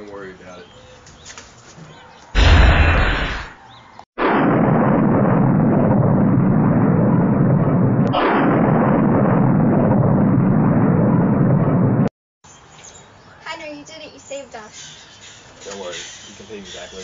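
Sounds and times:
explosion blast and rumble: 2.4 - 3.6, 4.2 - 12.1.

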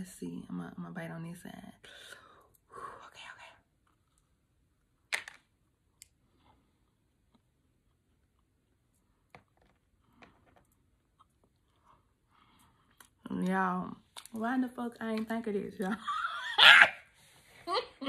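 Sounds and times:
chewing doughnut: 10.5 - 13.2.

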